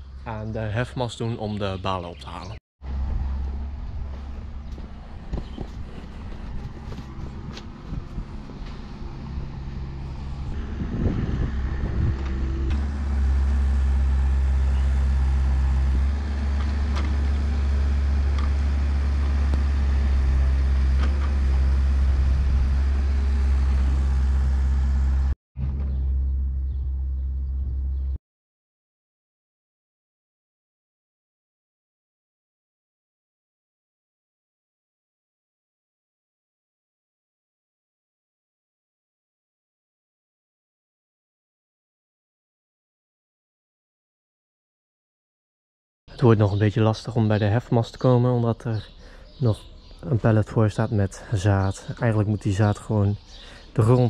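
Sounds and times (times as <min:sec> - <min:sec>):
diesel machinery engine droning: 0:02.8 - 0:28.2, 0:50.0 - 0:54.0.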